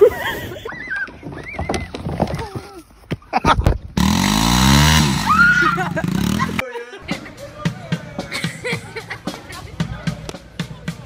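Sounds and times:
high-pitched squealing laughter: 0:00.0 - 0:03.6, 0:05.2 - 0:07.0
loud cry: 0:05.0 - 0:06.6.

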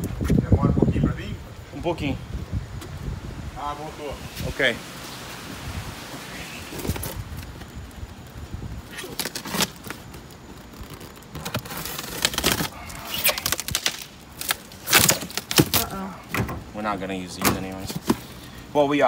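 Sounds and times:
styrofoam box scraping and rustling: 0:06.1 - 0:07.7, 0:08.9 - 0:15.8, 0:17.7 - 0:18.5
styrofoam lid pulled open: 0:08.9 - 0:15.9.

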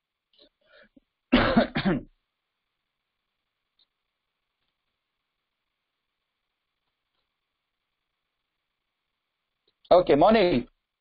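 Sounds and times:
person coughing: 0:01.3 - 0:02.1.

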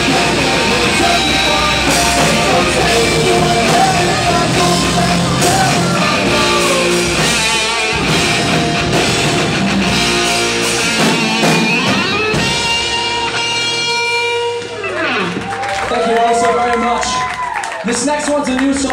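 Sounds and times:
rock band playing: 0:00.0 - 0:17.2.

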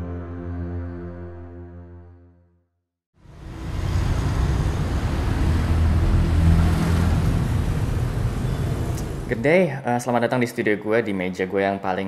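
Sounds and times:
low rumble: 0:03.2 - 0:09.3.

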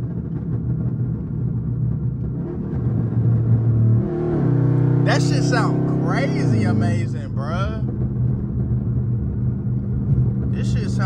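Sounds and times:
car engine drone from cabin: 0:00.0 - 0:11.0.

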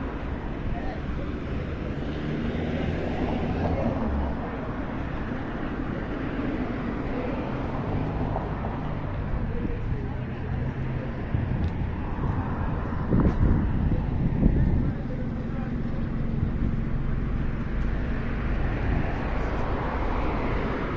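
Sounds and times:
cars passing with low rumble: 0:00.0 - 0:20.9.

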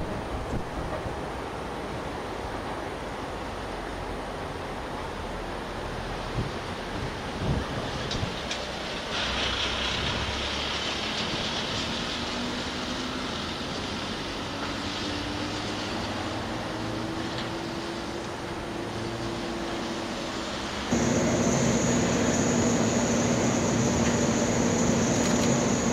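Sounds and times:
electric train hissing: 0:08.6 - 0:25.9.

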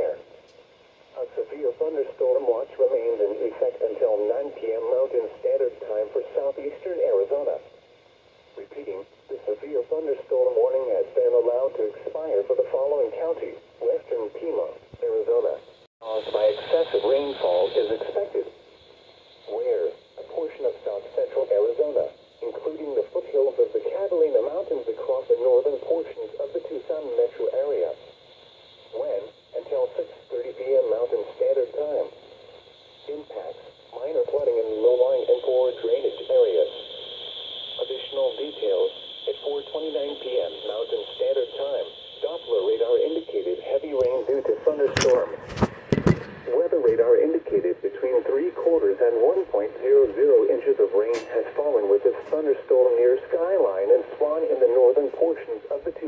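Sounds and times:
radio hiss: 0:00.0 - 0:56.0
voice through small radio speaker: 0:01.2 - 0:07.7, 0:08.6 - 0:18.5, 0:19.5 - 0:28.0, 0:28.9 - 0:32.2, 0:33.0 - 0:36.8, 0:37.8 - 0:56.0.

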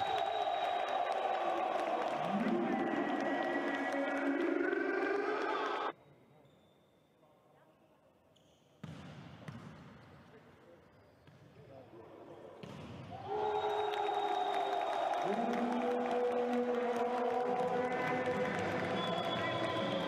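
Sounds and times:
crowd noise: 0:00.0 - 0:05.9, 0:13.2 - 0:20.0.

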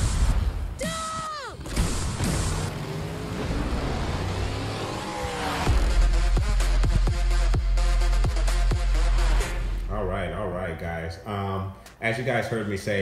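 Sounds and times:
car sound effects: 0:01.5 - 0:09.9
trailer music: 0:01.6 - 0:10.0
bass-heavy music hit: 0:05.3 - 0:09.8.

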